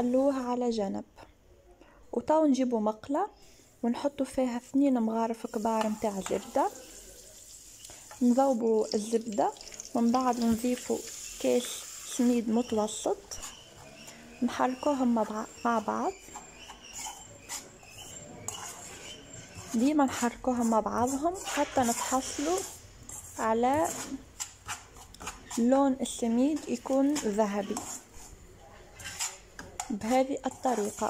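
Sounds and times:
metal spoon scraping frying pan: 0:09.6 - 0:31.0.

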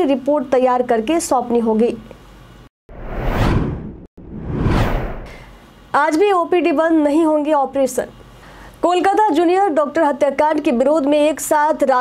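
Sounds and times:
whoosh sound effects: 0:02.9 - 0:05.5.

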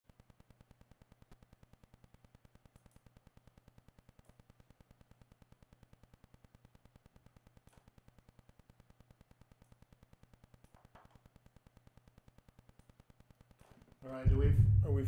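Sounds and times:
faint pulsing low hum: 0:00.0 - 0:15.0.

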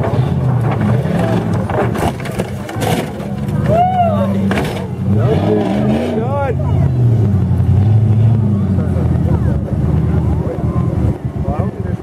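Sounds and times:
car body crunching: 0:00.0 - 0:05.7
engine running under load: 0:00.0 - 0:12.0.

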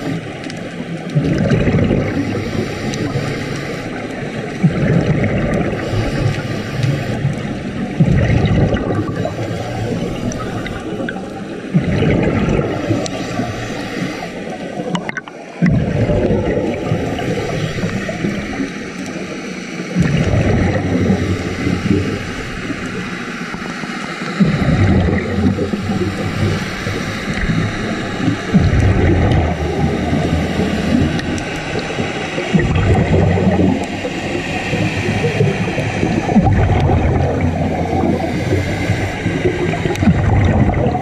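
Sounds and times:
underwater bubbles gurgling: 0:00.0 - 0:41.0
steady hiss: 0:01.8 - 0:04.7, 0:05.3 - 0:15.7, 0:16.7 - 0:41.0.

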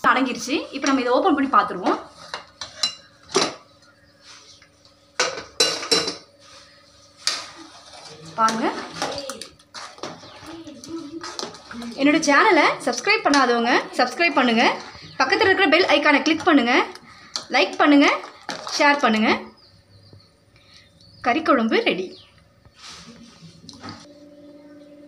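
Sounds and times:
spoon scraping in pot: 0:07.3 - 0:08.9.

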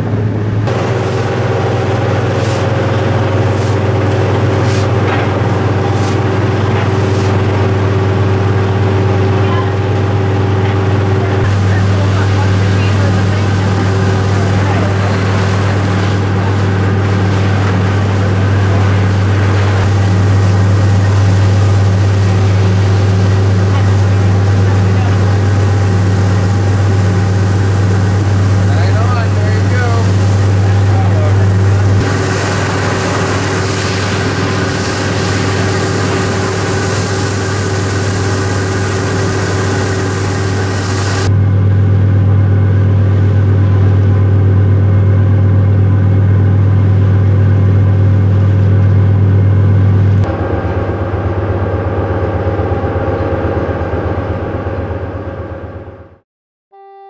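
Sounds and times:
boat engine droning: 0:00.0 - 0:56.2
water hissing and splashing: 0:00.7 - 0:09.4, 0:11.4 - 0:41.3.

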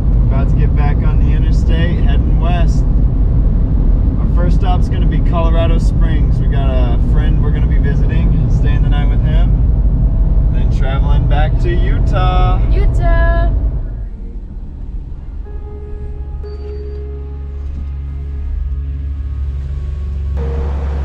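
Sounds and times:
road and engine rumble: 0:00.0 - 0:21.0
people talking: 0:00.3 - 0:02.8, 0:04.2 - 0:09.6, 0:10.5 - 0:13.5.

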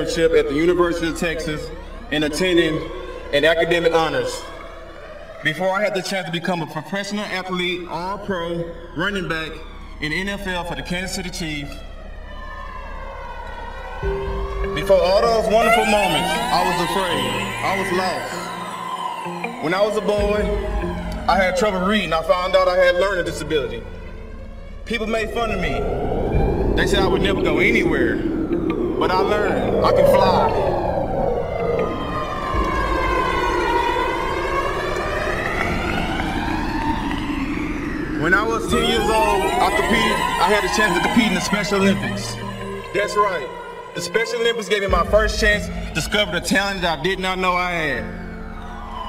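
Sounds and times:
siren-like electronic tone: 0:00.0 - 0:49.0
low rumble: 0:20.1 - 0:43.9.

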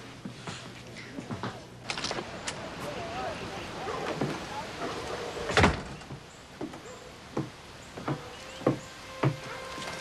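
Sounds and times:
door banging shut: 0:05.5 - 0:06.1, 0:08.0 - 0:10.0.

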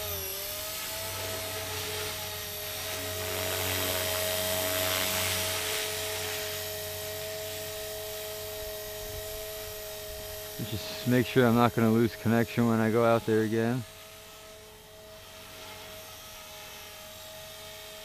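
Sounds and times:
rc helicopter motor whine: 0:00.0 - 0:18.0.

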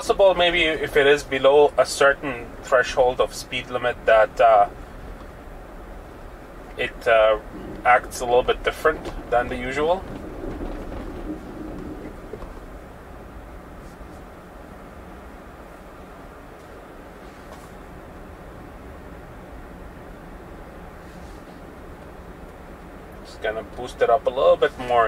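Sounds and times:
road and tyre noise: 0:00.0 - 0:25.0.

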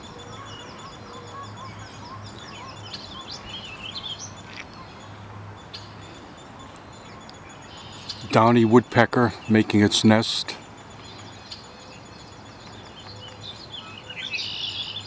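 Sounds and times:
birds trilling and warbling: 0:00.0 - 0:15.0.

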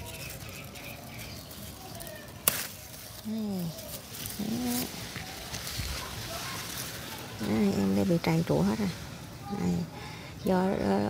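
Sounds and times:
rustling of leaves and grass: 0:00.0 - 0:11.0.

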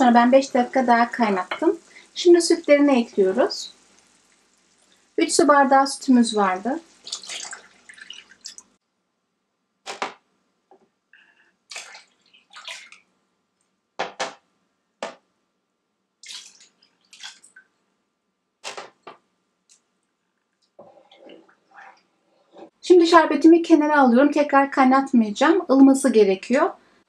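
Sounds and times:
milk splashing into syrup: 0:06.8 - 0:08.7, 0:11.7 - 0:13.1, 0:16.2 - 0:17.7.

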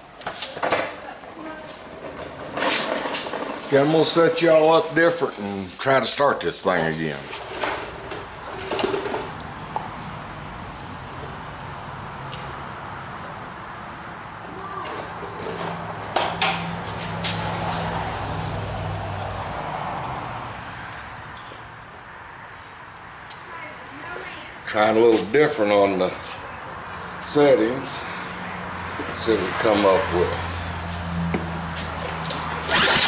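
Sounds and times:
high-pitched insect drone: 0:00.0 - 0:33.0
low hum: 0:06.3 - 0:33.0.

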